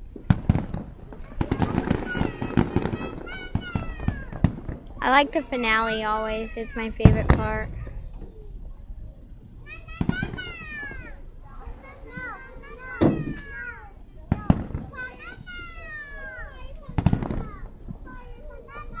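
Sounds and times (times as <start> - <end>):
fireworks bangs: 0.0 - 8.2, 9.5 - 19.0
children shrieking: 1.2 - 4.4, 9.6 - 19.0.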